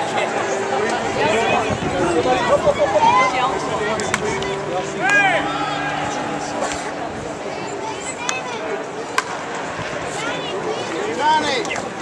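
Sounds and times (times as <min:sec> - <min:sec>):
voices murmuring: 0:00.0 - 0:12.0.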